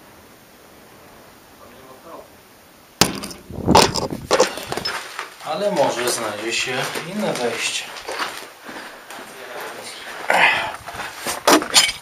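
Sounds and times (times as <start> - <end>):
debris knocks and scrapes: 3.0 - 8.5, 11.2 - 12.0
footsteps on concrete stairs: 3.1 - 11.7
person speaking: 4.3 - 8.1.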